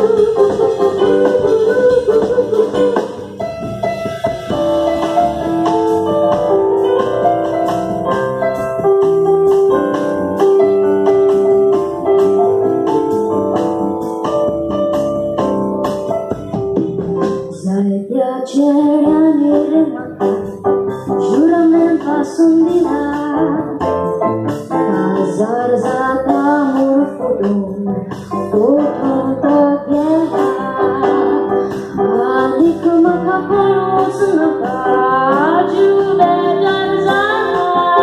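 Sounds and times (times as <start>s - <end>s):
woman singing into a microphone: 0.0s - 3.2s, 17.5s - 20.5s, 21.2s - 24.1s, 24.7s - 38.0s
keyboard: 0.0s - 38.0s.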